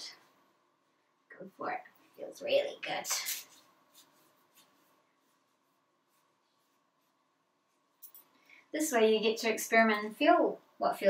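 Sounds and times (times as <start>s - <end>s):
hands rubbing skin: 2.9s - 8.3s.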